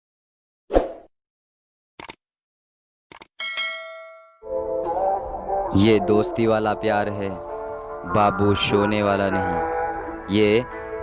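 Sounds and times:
brief clicks: 2.0 - 2.2, 3.1 - 3.3
bell-like ding: 3.4 - 4.4.

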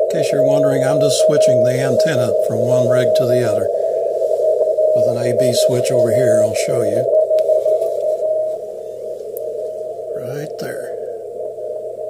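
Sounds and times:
morse beacon tone: 0.0 - 12.0
radio band noise: 0.0 - 12.0.

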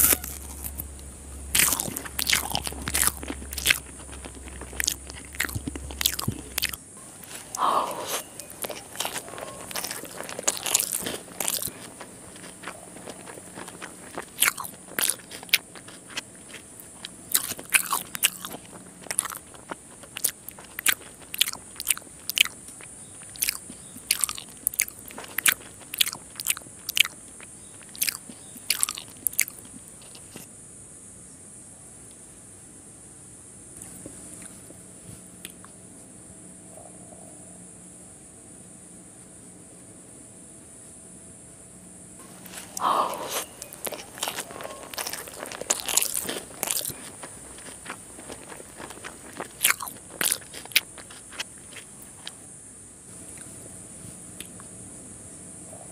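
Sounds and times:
crunching while chewing crisp food: 0.0 - 30.5, 33.8 - 36.2, 42.2 - 55.8.

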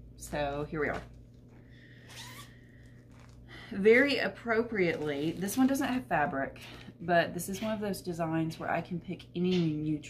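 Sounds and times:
fabric bag handling: 0.4 - 3.4, 4.7 - 5.8
zipper zipping: 2.0 - 3.4.

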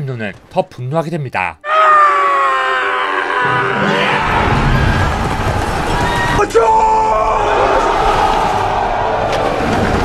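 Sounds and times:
deep rumbling roar of army: 1.7 - 10.0.

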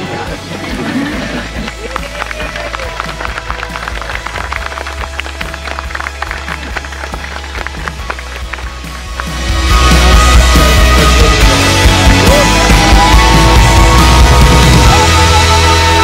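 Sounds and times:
background music with bass: 0.0 - 16.0
people clapping and cheering: 1.0 - 16.0.

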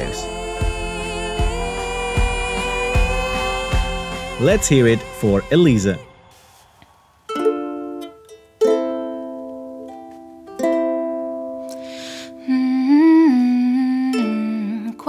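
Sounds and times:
ukulele strummed chords: 7.3 - 15.0
woman humming: 12.0 - 15.0.

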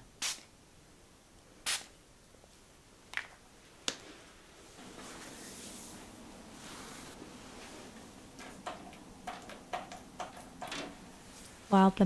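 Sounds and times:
spray bottle spritz: 0.2 - 0.5, 1.7 - 1.9.

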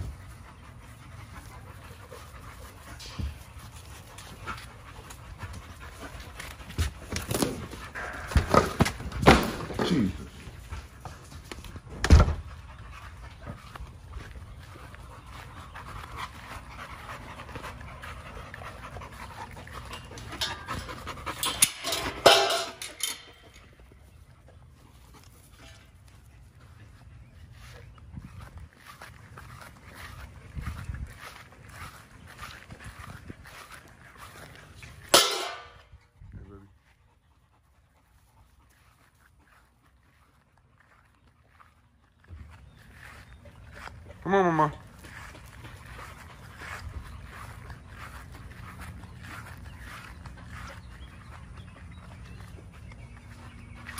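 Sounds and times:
dog panting: 0.0 - 8.3, 12.4 - 22.1, 36.7 - 41.7.

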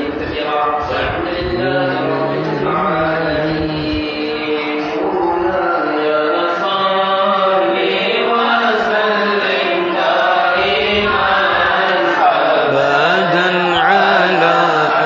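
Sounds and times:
men chanting into a microphone: 0.0 - 15.0.

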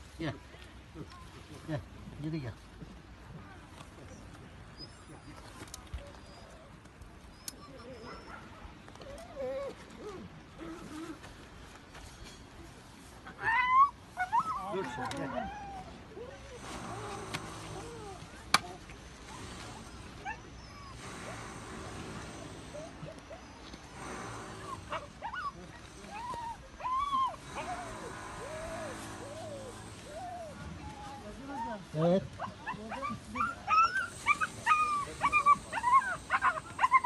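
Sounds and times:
puppy crying: 19.2 - 23.7, 24.6 - 31.8, 32.4 - 37.0.

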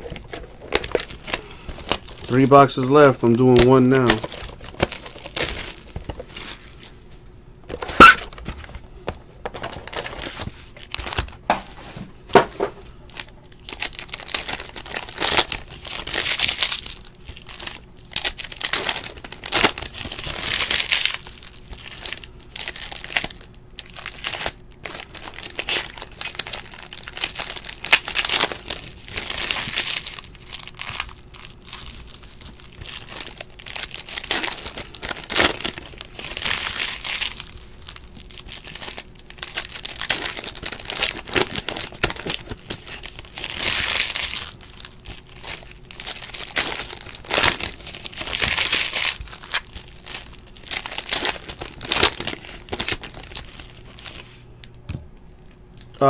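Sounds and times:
foil wrappers crinkling and tearing: 0.0 - 7.1, 7.7 - 54.5.

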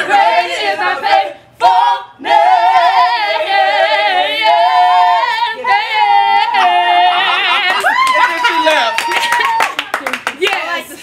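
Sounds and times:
group singing a cappella: 0.0 - 7.7.

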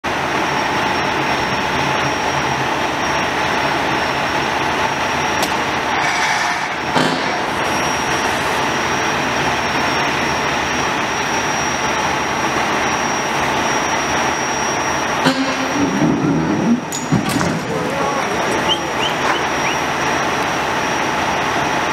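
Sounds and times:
high whine: 0.1 - 21.9
traffic engines rumbling: 0.1 - 21.9.

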